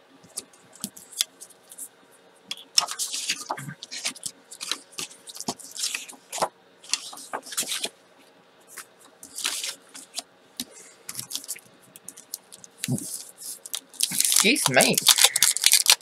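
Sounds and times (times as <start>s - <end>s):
paper swishes and rustles: 2.8s - 7.9s, 8.7s - 10.2s.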